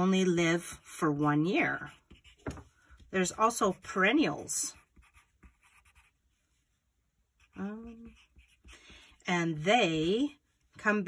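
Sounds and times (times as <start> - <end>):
pencil scratching on paper: 0.0 - 6.6, 7.3 - 10.7.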